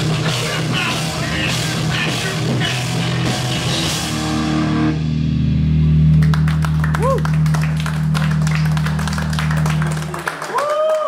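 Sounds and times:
punk band playing live: 0:00.0 - 0:10.2
distorted guitar chord ringing: 0:01.0 - 0:06.6
people clapping: 0:06.1 - 0:11.0.

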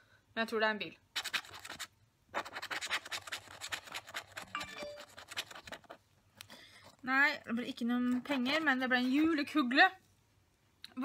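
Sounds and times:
rapid scratching of scratch card: 0:01.1 - 0:06.0.

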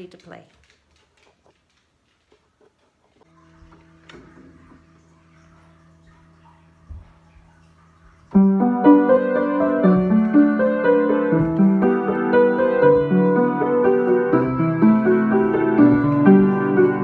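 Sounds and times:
upright piano playing: 0:08.3 - 0:17.0.

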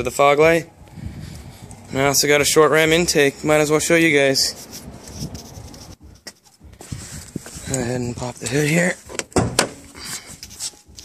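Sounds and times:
hood latch clicks and clunks: 0:09.1 - 0:09.8.

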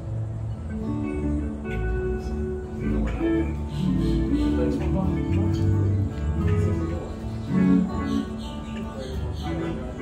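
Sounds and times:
bass guitar notes: 0:00.0 - 0:10.0
strummed and picked guitars: 0:00.0 - 0:10.0.

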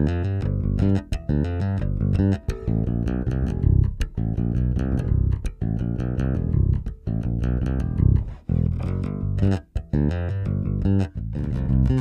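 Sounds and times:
electric bass plucked notes: 0:00.0 - 0:12.0.

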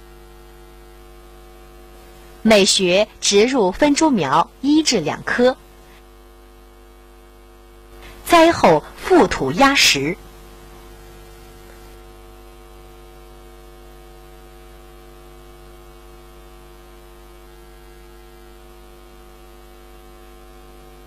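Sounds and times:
electrical mains hum: 0:00.0 - 0:21.0.

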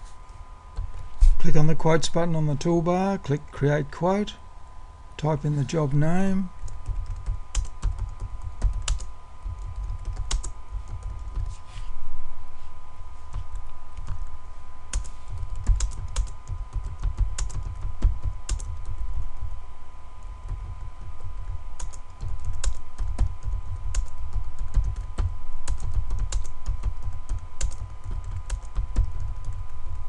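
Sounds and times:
typing on computer keyboard: 0:06.6 - 0:11.5, 0:14.9 - 0:19.0, 0:20.5 - 0:29.7.

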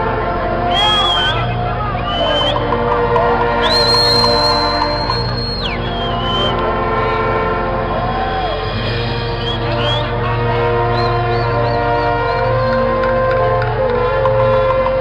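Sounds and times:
brass marching band: 0:00.0 - 0:15.0
high whistle tone: 0:00.6 - 0:12.8.

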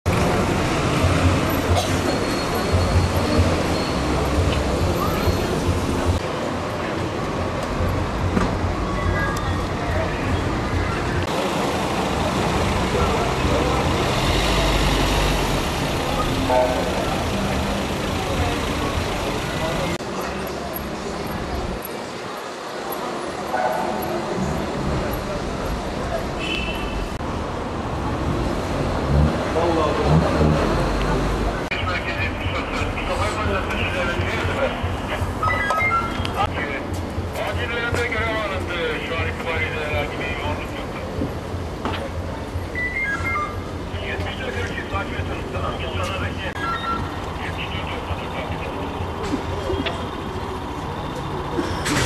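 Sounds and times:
street ambience: 0:00.0 - 0:52.0
vehicle engines rumbling: 0:00.0 - 0:52.0
voices: 0:00.1 - 0:27.2, 0:29.4 - 0:52.0.

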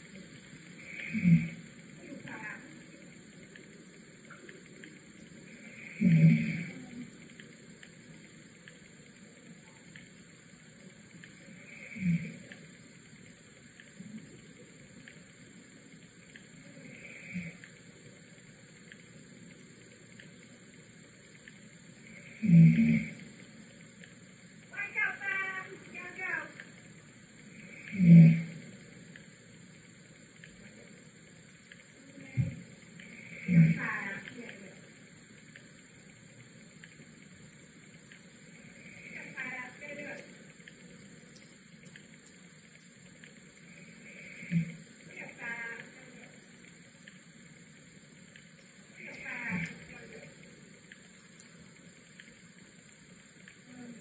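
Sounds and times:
faint ticks: 0:00.0 - 0:54.0
low hiss: 0:00.0 - 0:54.0.

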